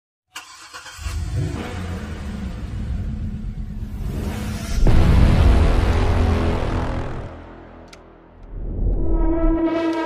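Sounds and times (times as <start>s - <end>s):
car engine starting and running: 0.3s - 10.0s.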